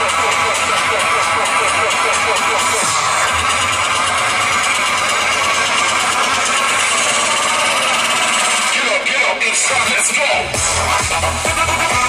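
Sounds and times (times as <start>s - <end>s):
many voices over speakers: 0.0s - 12.0s
music over outdoor speakers: 0.0s - 12.0s.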